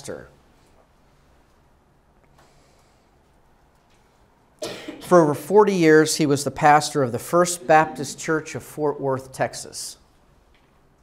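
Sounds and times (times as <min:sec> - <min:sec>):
man coughing: 0:04.6 - 0:05.2.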